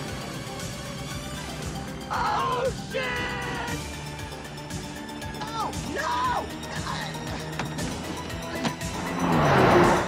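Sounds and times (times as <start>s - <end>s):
background music: 0.0s - 10.0s
car engine: 8.6s - 10.0s.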